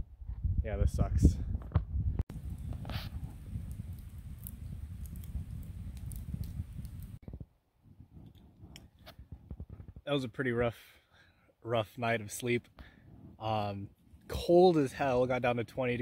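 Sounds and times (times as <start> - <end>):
campfire crackling and popping: 2.2 - 7.4, 8.1 - 10.1.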